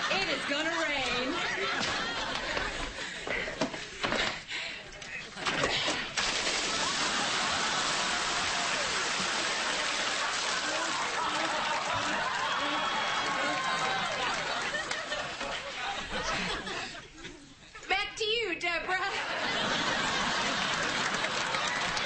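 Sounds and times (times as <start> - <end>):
water pouring onto person: 5.9 - 12.8.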